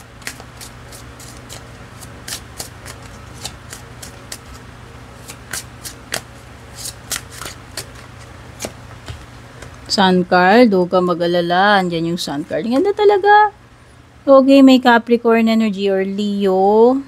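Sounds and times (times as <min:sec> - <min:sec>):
cards being shuffled: 0:00.0 - 0:04.6, 0:05.2 - 0:09.8
faint low hum: 0:00.0 - 0:17.0.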